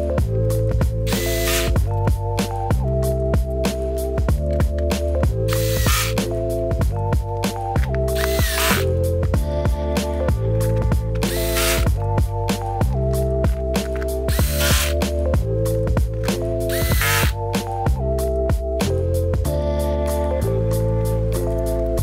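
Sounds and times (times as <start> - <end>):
background music with steady beat: 0.0 - 22.0
electric screwdriver whirring: 1.1 - 1.8, 5.5 - 6.2, 8.1 - 8.9, 11.3 - 11.9, 13.9 - 15.0, 16.7 - 17.4.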